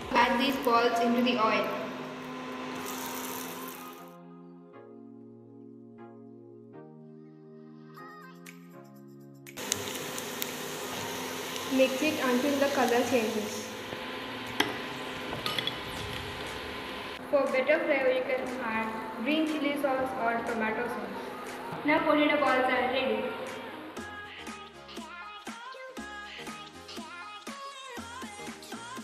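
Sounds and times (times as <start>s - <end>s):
hot oil sizzling: 2.4s - 4.0s, 9.6s - 17.2s
soft background music: 3.0s - 11.0s, 14.4s - 29.0s.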